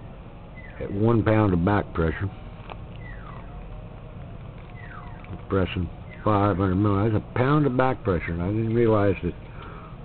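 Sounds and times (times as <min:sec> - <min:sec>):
low steady hum: 0:00.0 - 0:10.0
faint downward animal calls: 0:03.0 - 0:06.6.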